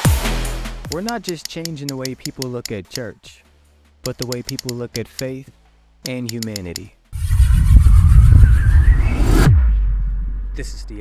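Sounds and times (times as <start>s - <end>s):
bass-heavy rising noise: 7.1s - 11.0s
downward pitch sweep: 7.2s - 10.5s
low hum: 7.2s - 11.0s.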